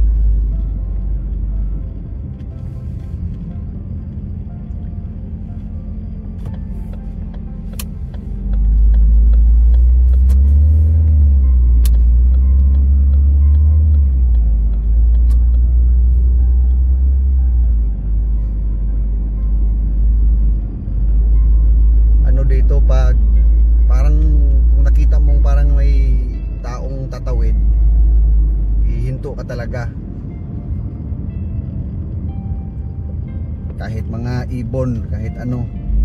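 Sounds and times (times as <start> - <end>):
background music: 0.0 - 36.0
loud deep rumble: 0.0 - 36.0.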